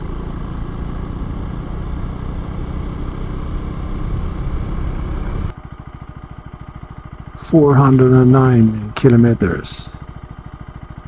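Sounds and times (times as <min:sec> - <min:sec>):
motorcycle engine idling: 0:00.0 - 0:11.0
motorcycle engine riding: 0:00.0 - 0:11.0.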